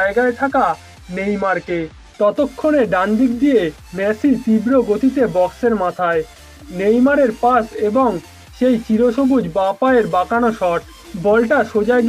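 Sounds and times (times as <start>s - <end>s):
background music: 0.0s - 12.0s
excited voice-over narration: 0.0s - 12.0s.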